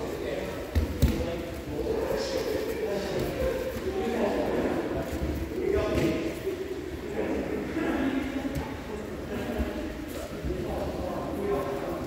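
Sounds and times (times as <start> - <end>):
background voices in echoing hall: 0.0 - 12.0.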